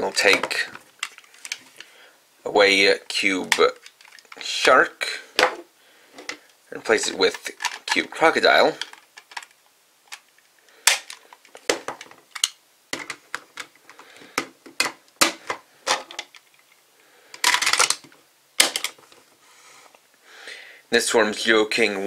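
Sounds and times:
plastic toy pieces snapping together: 0:10.1 - 0:13.7.

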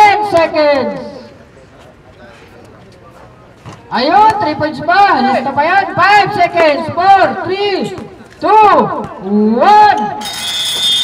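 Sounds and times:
long high-pitched whistle blast: 0:10.2 - 0:11.0.

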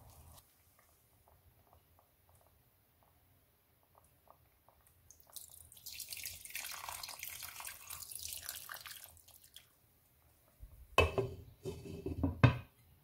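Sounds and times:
water splashing onto rice: 0:05.1 - 0:09.7.

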